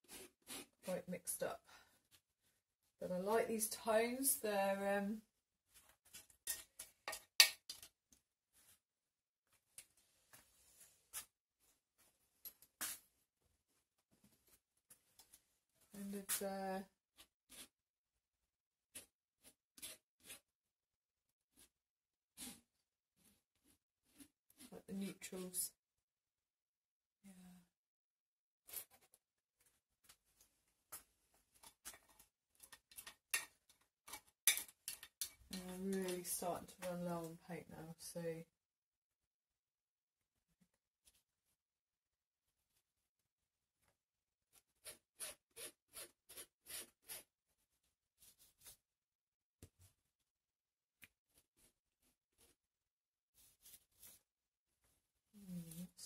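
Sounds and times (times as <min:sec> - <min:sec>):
palette knife scraping paint: 0:17.2 - 0:17.8, 0:18.9 - 0:20.5, 0:22.4 - 0:24.8, 0:44.5 - 0:47.4.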